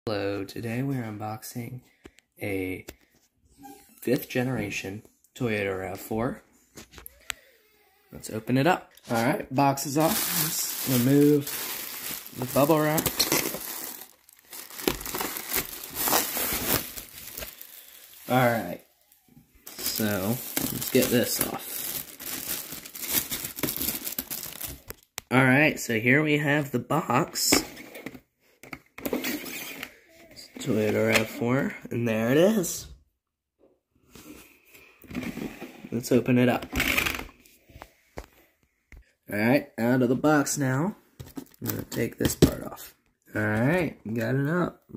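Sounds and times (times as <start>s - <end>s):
plastic wrapping crinkling: 9.0s - 19.0s, 19.6s - 25.2s
hands rubbing polystyrene foam: 10.0s - 18.8s.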